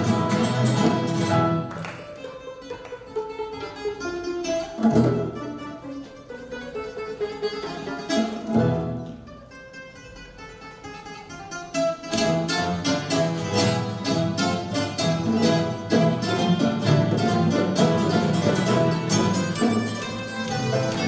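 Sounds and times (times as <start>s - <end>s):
piano: 0.0s - 2.3s
plucked bouzouki and guitar: 0.0s - 21.0s
violins and cello: 12.2s - 21.0s.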